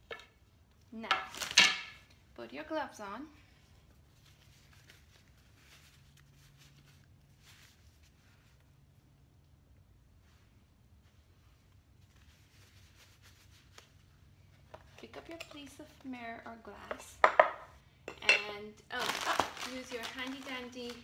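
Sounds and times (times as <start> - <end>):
low steady hum: 0.0 - 21.0
fabric rustling: 3.9 - 9.0, 10.2 - 14.7, 18.9 - 21.0.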